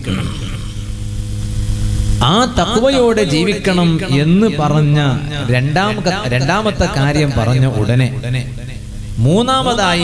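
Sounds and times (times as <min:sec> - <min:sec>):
man's amplified voice: 0:00.0 - 0:01.0, 0:02.2 - 0:10.0
electrical mains hum: 0:00.0 - 0:10.0.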